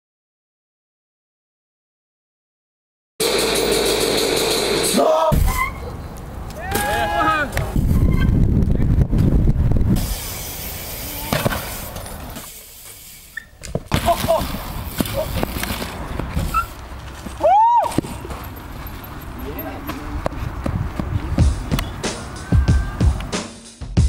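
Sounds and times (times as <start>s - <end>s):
low rumble of outdoor noise: 3.8s - 23.4s
person shouting: 5.0s - 5.4s, 6.6s - 7.6s, 22.3s - 23.2s.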